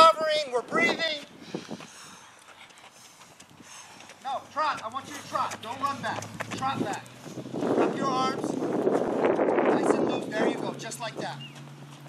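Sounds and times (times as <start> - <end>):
footsteps jogging on track: 0.0 - 12.0.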